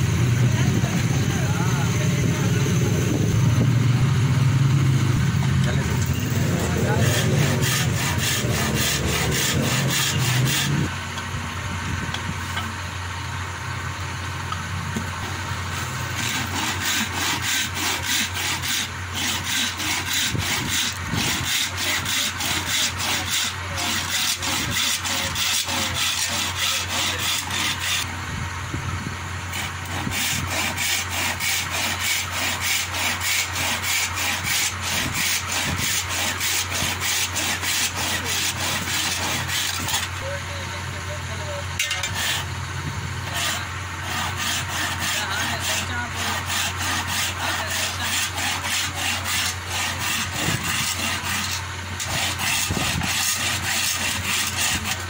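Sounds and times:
hand saw cutting wood: 0:05.6 - 0:10.9, 0:15.0 - 0:28.1, 0:29.5 - 0:40.3, 0:41.8 - 0:42.5, 0:43.2 - 0:55.0.

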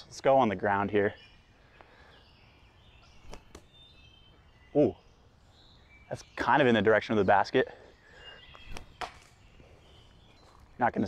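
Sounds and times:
faint high bird chirps: 0:00.0 - 0:11.0.

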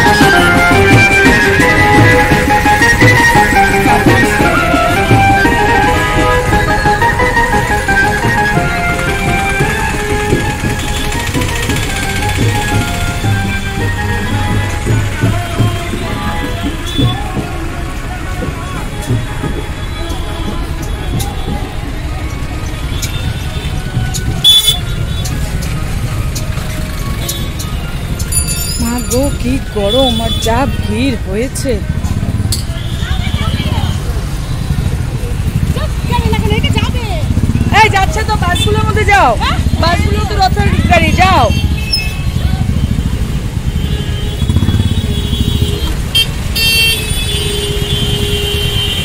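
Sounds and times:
street noise rumble: 0:00.0 - 0:49.0
short shrill horn toot: 0:24.4 - 0:24.9.

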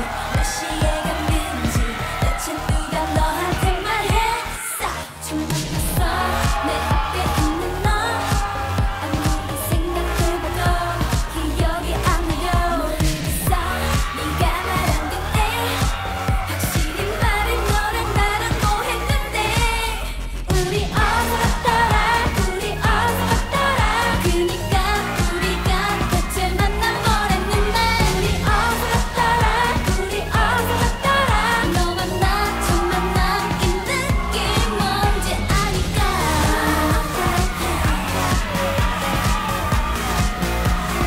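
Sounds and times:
electronic dance beat: 0:00.0 - 0:41.0
female group vocals: 0:00.0 - 0:41.0.

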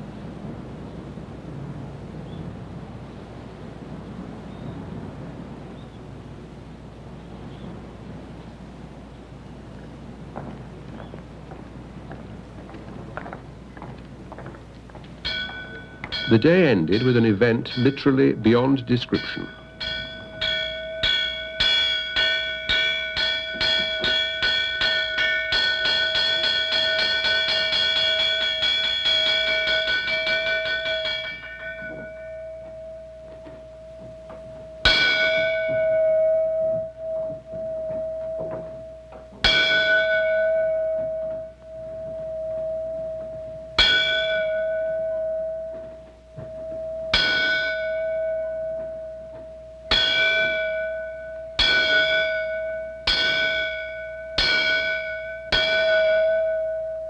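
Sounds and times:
temple bell struck with mallet: 0:15.2 - 0:57.0.

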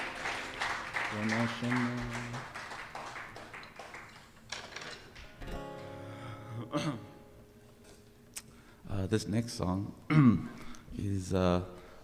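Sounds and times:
acoustic guitar plucks and taps: 0:04.4 - 0:06.0
acoustic guitar chord ringing: 0:05.4 - 0:07.7.

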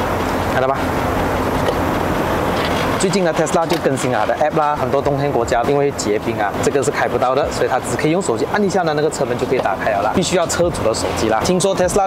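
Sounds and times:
traffic rumble with hiss: 0:00.0 - 0:12.0.

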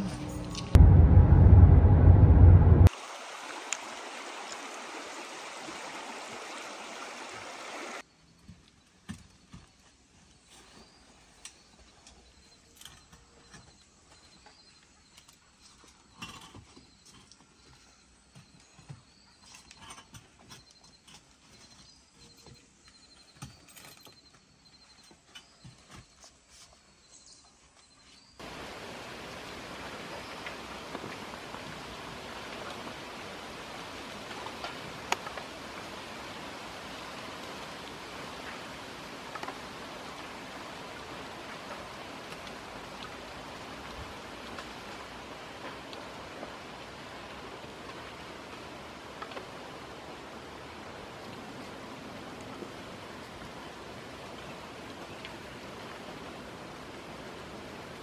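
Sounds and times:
stream running: 0:02.8 - 0:08.0, 0:28.4 - 0:58.0.

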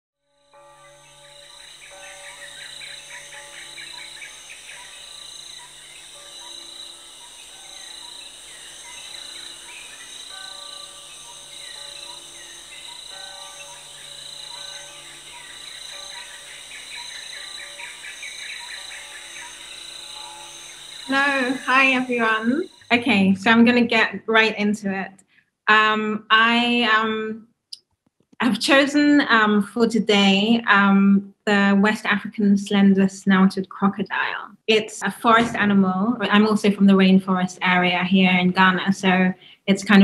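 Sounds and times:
insects chorus: 0:00.8 - 0:24.1
birds chirping: 0:00.8 - 0:25.0.

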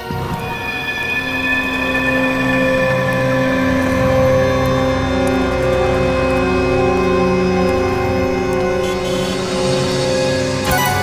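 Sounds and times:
suspenseful sustained chords: 0:00.0 - 0:11.0.

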